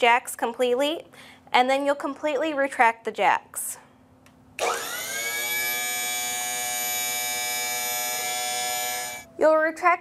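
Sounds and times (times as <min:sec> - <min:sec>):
hydraulic pump motor whining: 0:04.6 - 0:09.3.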